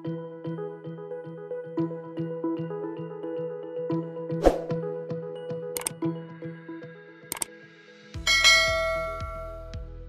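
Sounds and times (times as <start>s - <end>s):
soft background music: 0.0s - 10.0s
short click: 5.8s - 6.0s
bell-like chime ringing: 8.3s - 9.7s.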